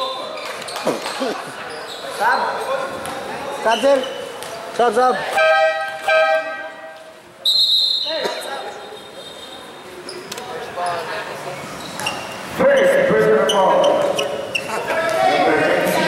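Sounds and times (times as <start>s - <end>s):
referee's whistle: 7.4s - 8.2s.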